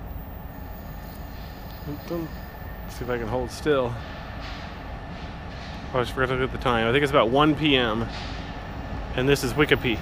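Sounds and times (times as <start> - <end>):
freight train rumble: 0.0 - 10.0.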